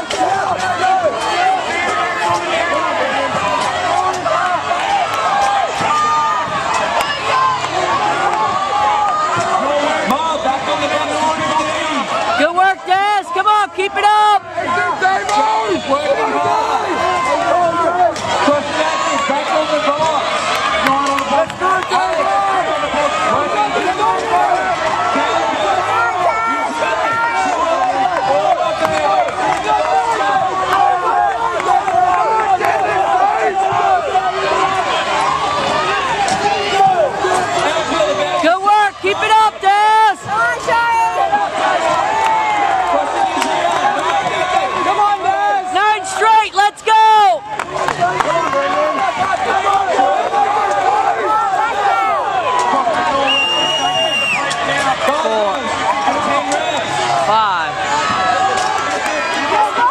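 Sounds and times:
stadium crowd shouting and cheering: 0:00.0 - 0:59.9.

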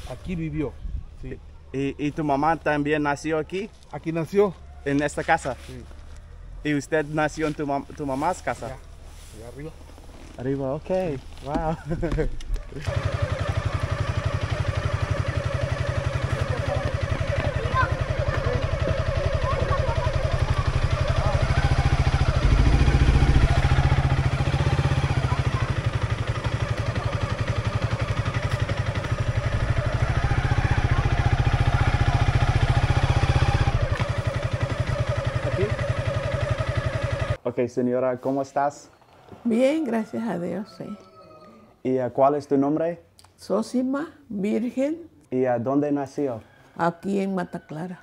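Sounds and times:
motorcycle engine running: 0:09.8 - 0:37.4.

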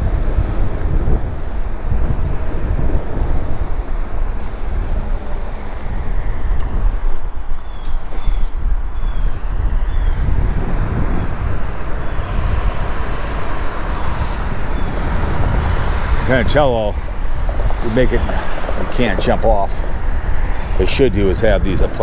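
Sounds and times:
highway traffic rushing: 0:00.0 - 0:22.0
wind buffeting microphone: 0:00.0 - 0:22.0.

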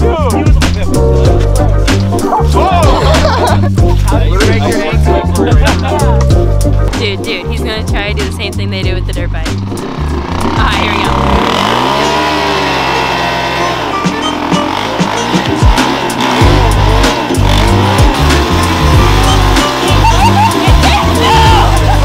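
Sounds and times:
music with heavy bass beat: 0:00.0 - 0:22.0
dirt bike engine revving: 0:00.4 - 0:22.0.

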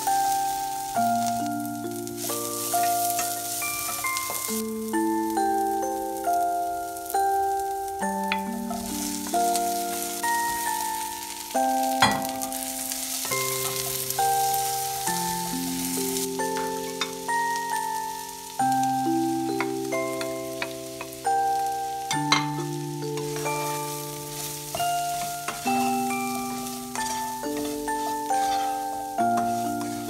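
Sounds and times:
slow background music: 0:00.0 - 0:30.0
vegetables sizzling in oil: 0:00.0 - 0:30.0.

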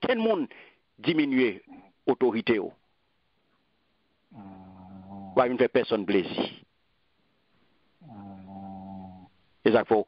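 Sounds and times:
man speaking: 0:00.0 - 0:02.8, 0:05.3 - 0:06.7, 0:09.6 - 0:10.0.

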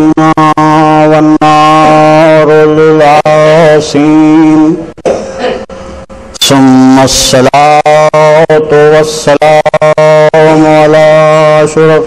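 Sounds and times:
man chanting through a microphone: 0:00.0 - 0:04.9, 0:06.4 - 0:12.0.

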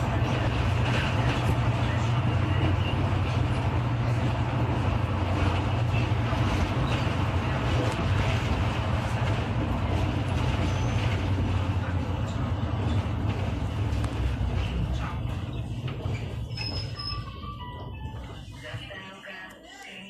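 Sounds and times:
bus engine and road rumble: 0:00.0 - 0:20.0.

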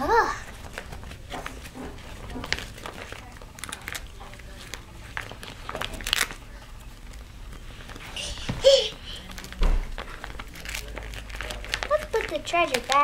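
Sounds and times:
plastic pouch crinkling: 0:00.5 - 0:13.0.

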